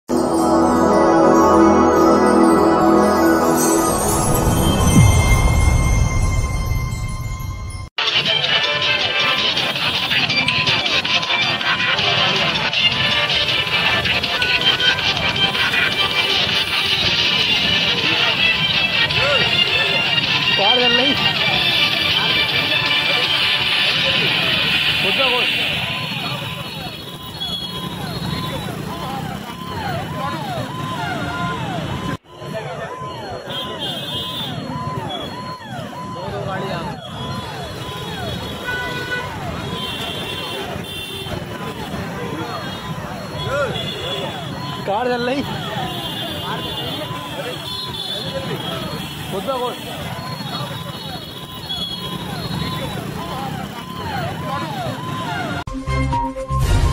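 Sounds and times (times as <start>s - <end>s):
rising and falling electronic tone: 0.1s - 7.9s
news music sting: 0.1s - 9.8s
crowd chatter: 0.1s - 38.4s, 39.2s - 44.8s, 45.4s - 55.7s
traffic: 0.1s - 55.7s
emergency vehicle siren: 0.2s - 56.9s.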